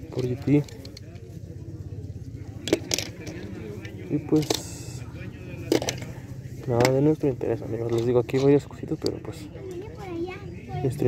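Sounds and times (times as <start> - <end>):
toy cars clicking together: 2.6 - 3.6, 4.4 - 4.8.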